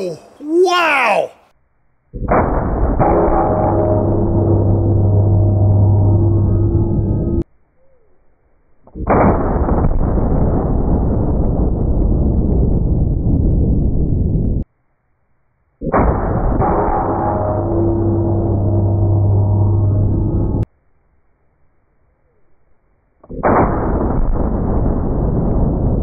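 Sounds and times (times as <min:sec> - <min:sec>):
slowed-down gunshot booms: 0:02.2 - 0:07.4, 0:08.9 - 0:14.6, 0:15.8 - 0:20.7, 0:23.2 - 0:26.0.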